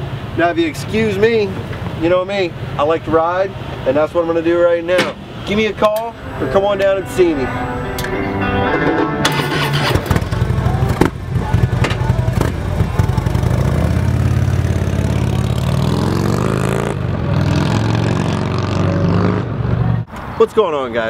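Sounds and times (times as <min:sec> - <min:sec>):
motorcycle engine starting and revving: 0:09.2 - 0:19.5
motorcycle pulling away: 0:09.3 - 0:19.5.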